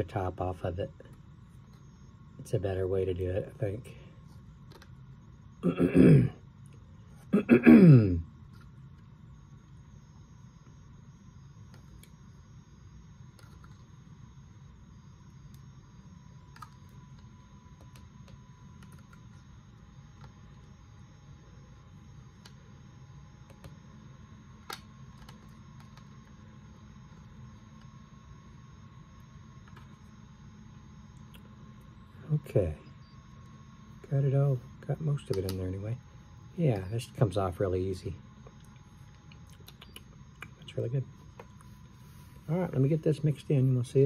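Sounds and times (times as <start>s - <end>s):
low room hum: 0.0s - 44.0s.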